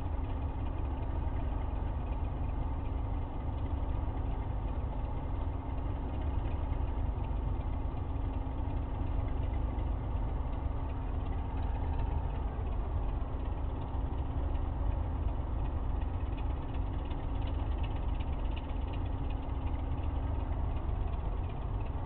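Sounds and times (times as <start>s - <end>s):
diesel locomotive engine idling: 0.0s - 22.0s.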